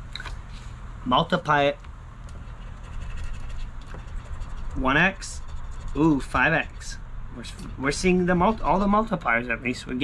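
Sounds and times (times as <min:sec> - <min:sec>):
coin scratching lottery ticket: 0:02.5 - 0:07.0.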